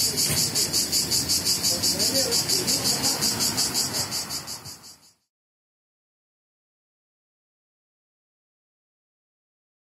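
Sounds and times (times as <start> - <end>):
cicada buzzing chirr: 0.0 - 5.3.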